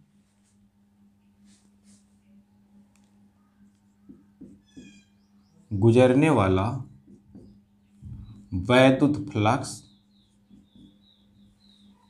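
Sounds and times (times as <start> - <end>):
faint steady hum: 0.0 - 12.0
marker writing on a whiteboard: 3.7 - 5.2, 6.9 - 7.7, 10.0 - 11.3
marker tip squeaking: 4.1 - 5.2.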